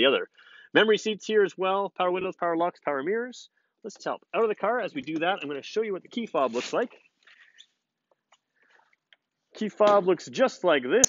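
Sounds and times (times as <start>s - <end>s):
faint rustles: 6.4s - 7.7s.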